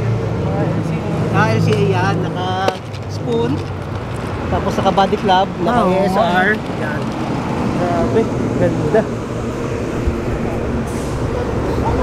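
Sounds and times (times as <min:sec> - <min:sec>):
low rumble of vehicle noise: 0:00.0 - 0:12.0.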